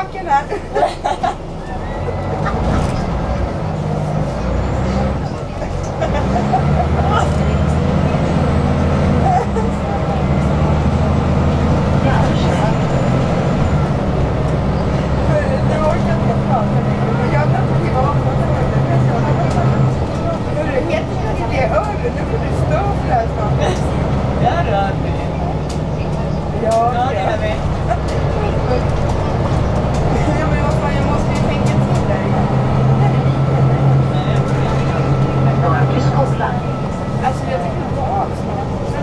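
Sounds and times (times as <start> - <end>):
bus engine droning: 0.0 - 39.0
tyre road rumble: 0.0 - 39.0.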